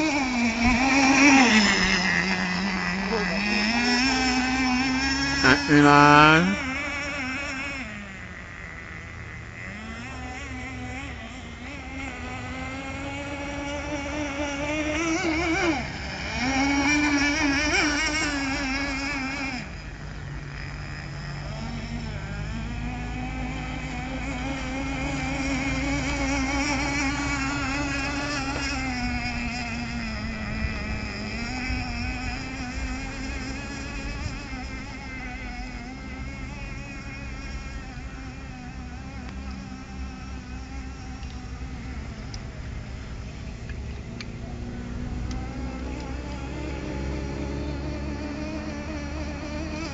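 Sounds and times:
rc boat engine whining: 0.0s - 49.9s.

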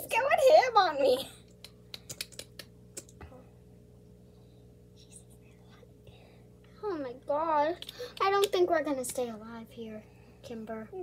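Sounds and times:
faint low hum: 0.0s - 11.0s
soft whisper: 4.9s - 6.5s.

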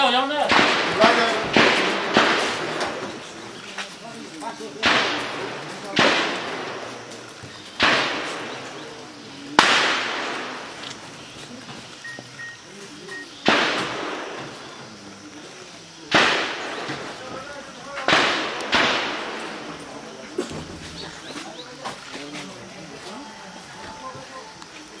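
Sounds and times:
gunshots with long echo: 0.3s - 11.4s, 13.4s - 20.3s.

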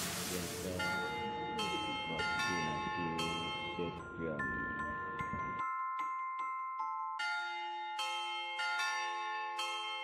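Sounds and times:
bell-like chime melody: 0.2s - 10.0s.

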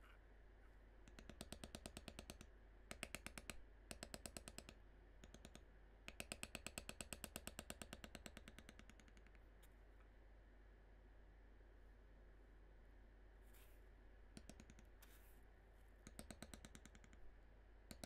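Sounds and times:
mallet tapping leather tool: 6.1s - 9.4s, 16.0s - 17.2s.

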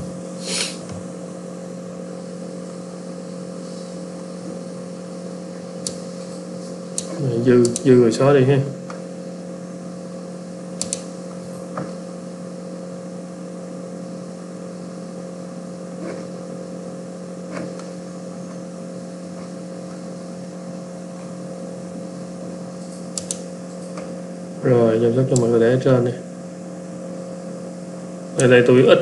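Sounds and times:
low electrical hum: 0.0s - 29.0s
computer mouse clicks: 5.8s - 6.0s, 6.9s - 7.9s, 10.8s - 11.1s, 23.1s - 24.1s.

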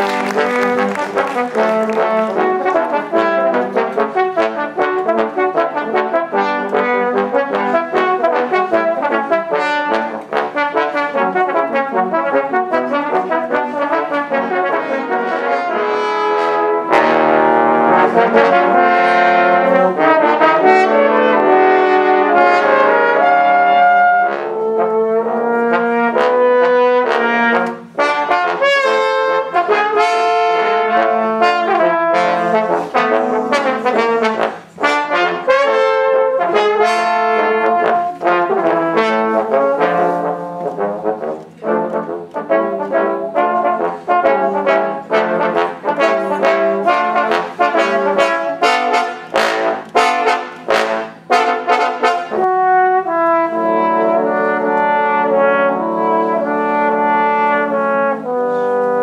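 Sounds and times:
trombone quartet playing: 0.0s - 59.0s.

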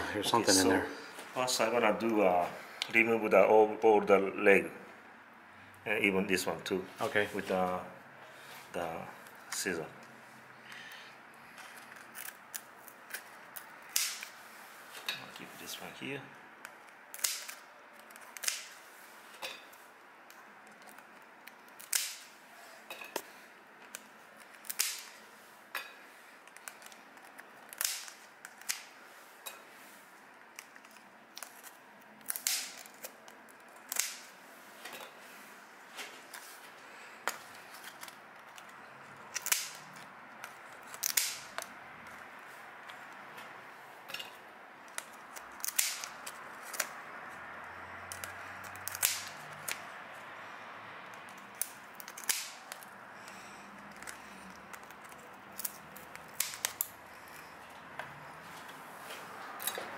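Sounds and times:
scissors snipping through shell: 51.3s - 52.9s.

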